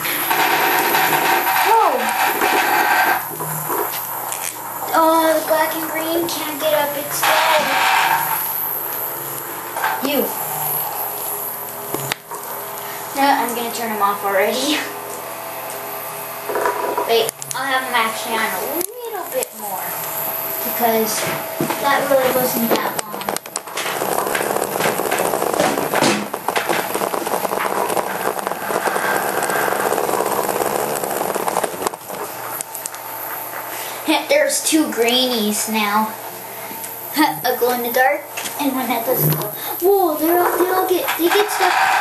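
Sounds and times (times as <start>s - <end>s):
vibrating toys buzzing on tile: 0.0s - 42.0s.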